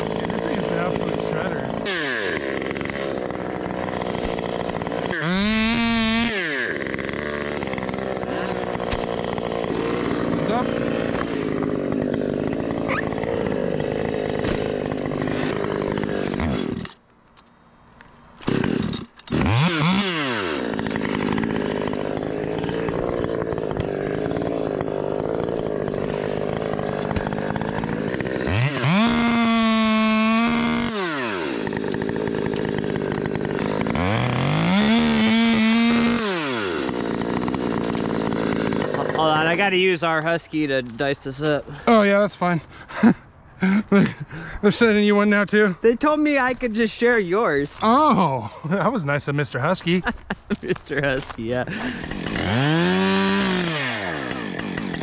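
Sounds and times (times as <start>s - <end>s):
chainsaw idling: 0.0s - 17.0s, 18.4s - 45.7s, 46.4s - 55.0s
chainsaw revving: 0.0s - 17.0s, 18.4s - 45.7s, 46.4s - 55.0s.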